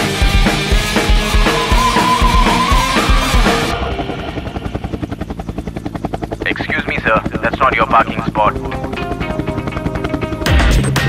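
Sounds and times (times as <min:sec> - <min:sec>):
rock music with drums: 0:00.0 - 0:04.9, 0:08.7 - 0:11.0
helicopter rotor blades chopping: 0:00.0 - 0:11.0.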